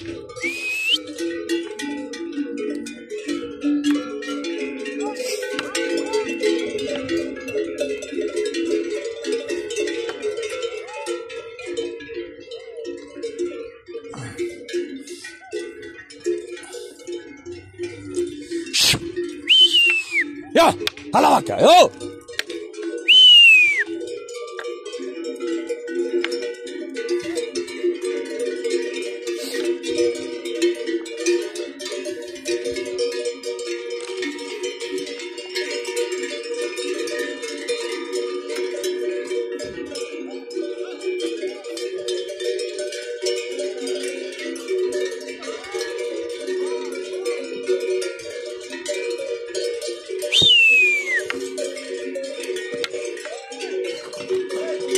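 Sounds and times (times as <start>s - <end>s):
cattle bells clanking: 0.0s - 54.9s
person whistling falling pitch: 0.4s - 1.0s, 18.8s - 20.3s, 23.1s - 23.9s, 50.3s - 51.3s.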